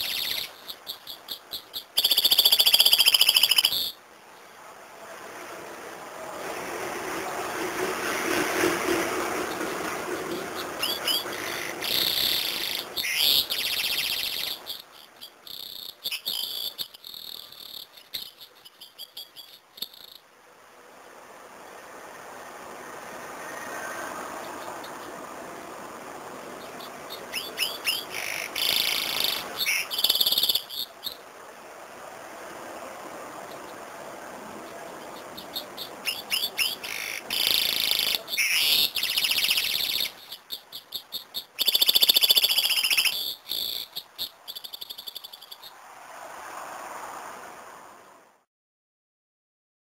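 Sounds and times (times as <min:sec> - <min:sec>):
bird singing jingling trills: 0:00.0 - 0:04.0, 0:09.4 - 0:20.2, 0:24.4 - 0:25.2, 0:26.5 - 0:31.2, 0:34.6 - 0:45.7.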